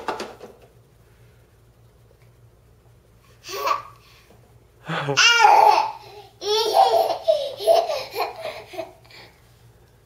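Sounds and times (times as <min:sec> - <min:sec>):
baby laughing: 0:03.5 - 0:04.0, 0:05.2 - 0:09.1.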